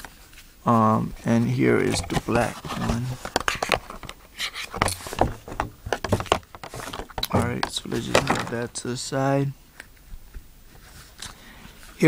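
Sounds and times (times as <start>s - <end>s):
device cases clicking and knocking: 3.2s - 8.7s.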